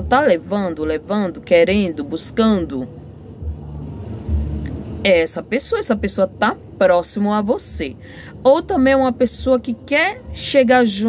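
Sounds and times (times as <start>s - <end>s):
low rumble: 2.9s - 5.1s.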